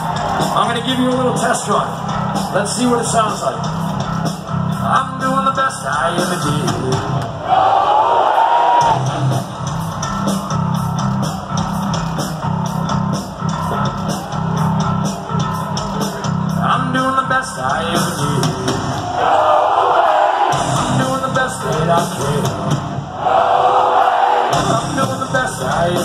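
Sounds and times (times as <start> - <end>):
live rock band playing: 0.0 - 7.3, 8.8 - 19.2, 20.5 - 23.1, 24.5 - 26.0
crowd singing along: 19.0 - 20.8, 23.0 - 25.0.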